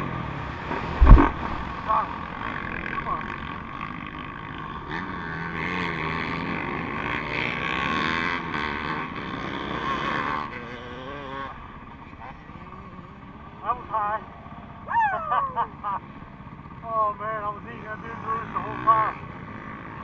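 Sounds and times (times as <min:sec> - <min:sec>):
dirt bike engine revving: 0:00.0 - 0:20.0
wind noise: 0:00.6 - 0:02.0.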